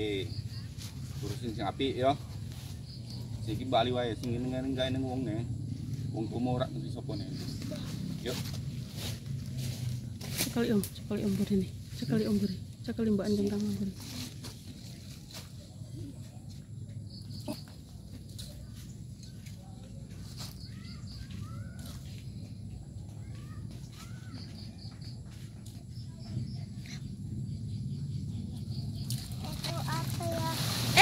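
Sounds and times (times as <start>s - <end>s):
steady low rumble: 0.0s - 20.4s, 24.8s - 30.9s
birds chirping: 0.0s - 31.0s.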